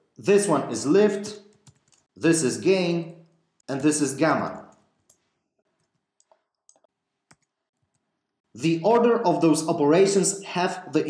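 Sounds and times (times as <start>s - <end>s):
computer mouse clicks: 1.4s - 2.1s, 4.6s - 8.1s.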